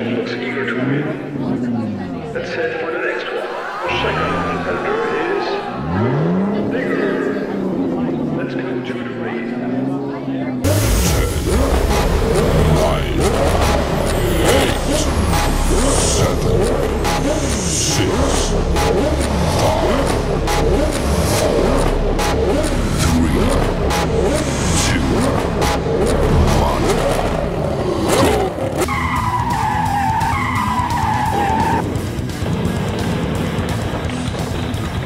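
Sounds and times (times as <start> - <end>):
background music: 0.0 - 35.0
race car engines revving: 0.0 - 35.0.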